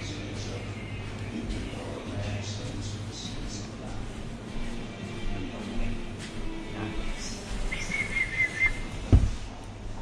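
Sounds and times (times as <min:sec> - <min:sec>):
low background hum: 0:00.0 - 0:10.0
high wavering whistling tone: 0:07.7 - 0:08.9.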